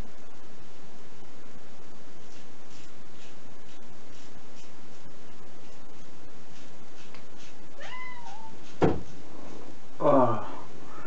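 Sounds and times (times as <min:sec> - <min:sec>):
steady hiss: 0:00.0 - 0:11.0
cat meowing: 0:07.8 - 0:08.6.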